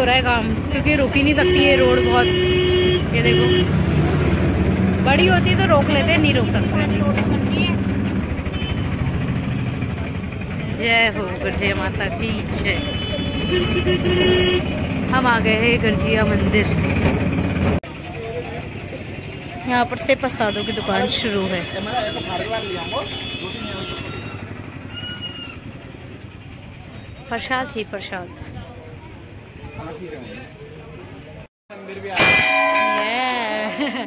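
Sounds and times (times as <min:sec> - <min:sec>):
auto-rickshaw engine rumble: 0:00.0 - 0:31.5
metal bell ringing: 0:32.1 - 0:34.0.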